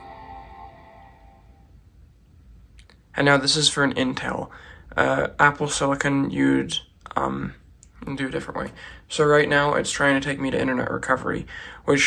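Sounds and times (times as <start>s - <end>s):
laptop startup chime: 0.0s - 1.7s.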